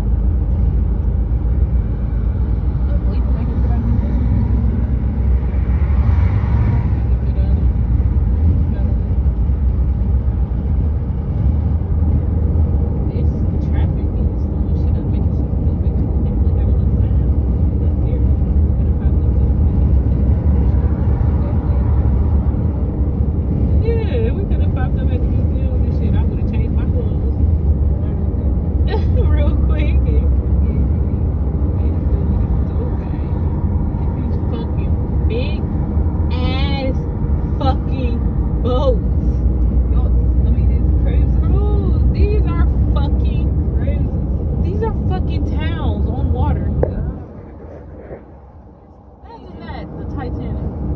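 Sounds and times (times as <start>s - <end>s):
car road and wind noise: 0.0s - 50.9s.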